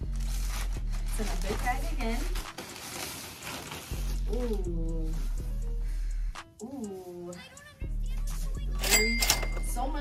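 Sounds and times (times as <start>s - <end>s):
plastic bag rustling and crinkling: 0.0s - 5.4s.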